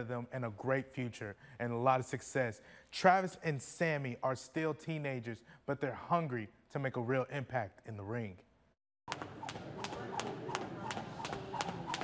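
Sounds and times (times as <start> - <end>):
skipping rope ticking on floor: 9.1 - 12.0.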